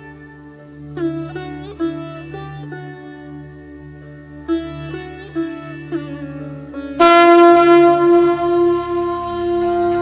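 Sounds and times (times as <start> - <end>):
conch shell blown: 6.9 - 10.0.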